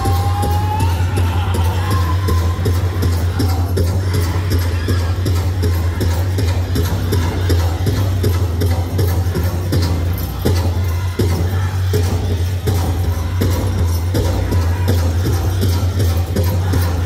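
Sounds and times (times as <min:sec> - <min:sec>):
big drum steady beat: 0:00.0 - 0:17.0.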